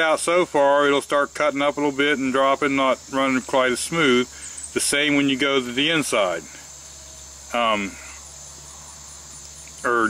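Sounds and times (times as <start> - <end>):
high insect trill: 0.0 - 10.0.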